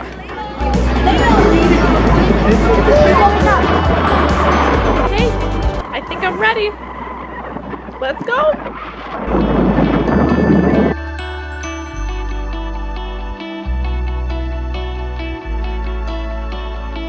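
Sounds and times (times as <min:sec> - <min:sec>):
people chattering: 0:00.0 - 0:06.8.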